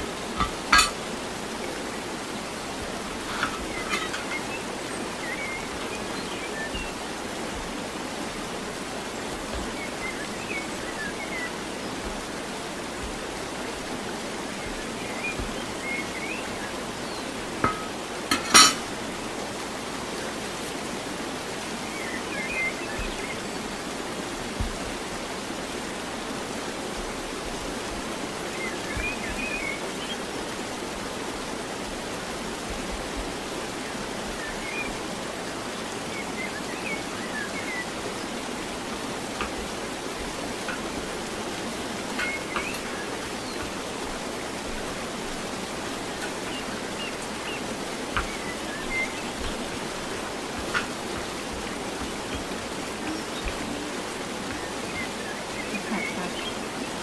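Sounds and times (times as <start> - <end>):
background hiss: 0.0 - 57.0.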